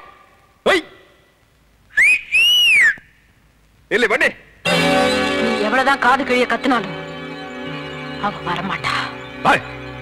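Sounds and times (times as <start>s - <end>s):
person whistling loudly: 1.9s - 3.1s.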